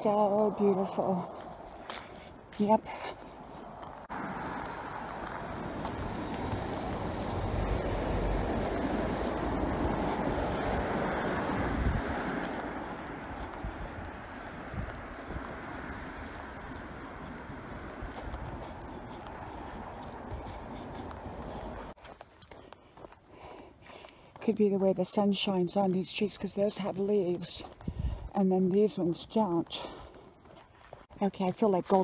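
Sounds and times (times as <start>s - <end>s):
car passing: 0.0s - 22.0s.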